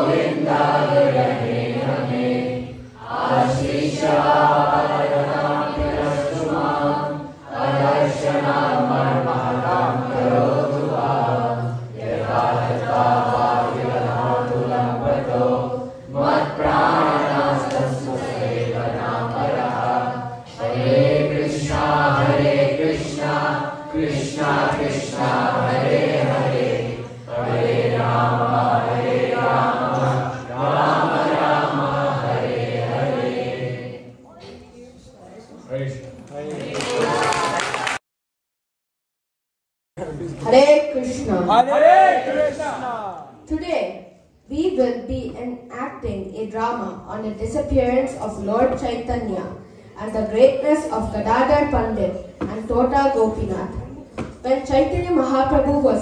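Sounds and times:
group chanting in unison: 0.0 - 34.5, 36.5 - 38.0, 41.5 - 43.4.

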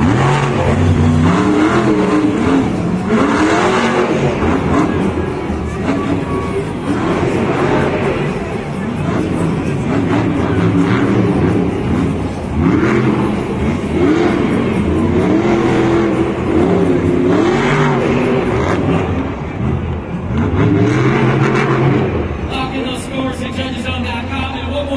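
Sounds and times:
truck engine revving hard: 0.0 - 24.3.

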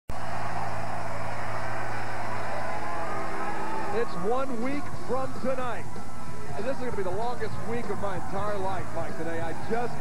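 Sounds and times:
crowd cheering and shouting: 0.1 - 10.0.

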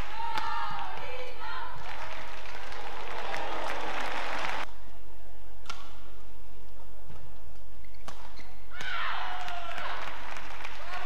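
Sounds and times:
arena crowd applauding: 1.8 - 4.7, 9.3 - 11.0.

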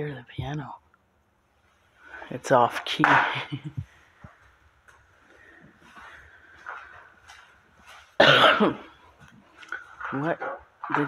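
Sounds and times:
faint footsteps: 3.0 - 11.0.

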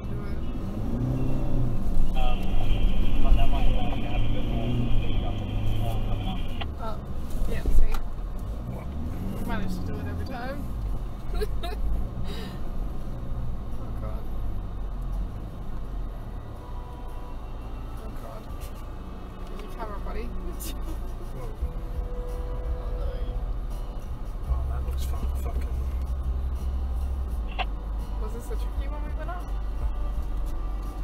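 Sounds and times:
diesel engine drone from inside: 0.0 - 31.0.

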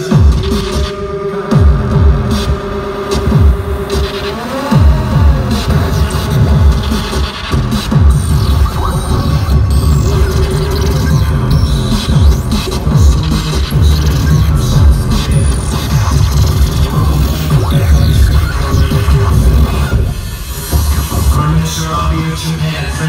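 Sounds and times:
glitchy electronic noise: 0.0 - 23.0
live electronic rock music: 0.0 - 23.0.

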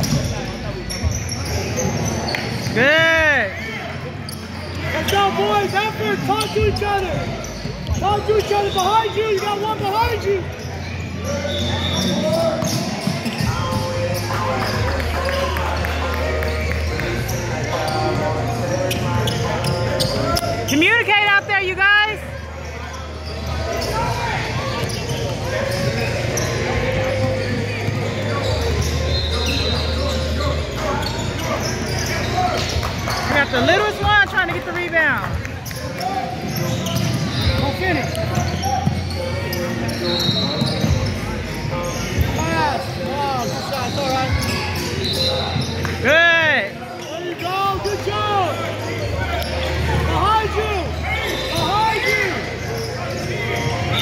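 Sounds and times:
sneakers squeaking: 0.0 - 54.0
voices: 0.0 - 54.0.

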